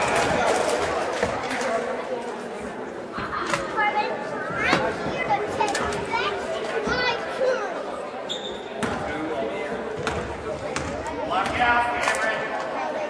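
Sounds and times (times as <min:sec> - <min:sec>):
voices echoing in a gymnasium: 0:00.0 - 0:13.0.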